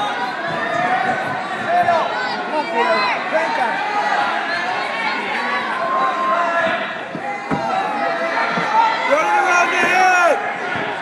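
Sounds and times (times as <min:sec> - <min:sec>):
spectators chattering: 0:00.0 - 0:11.0.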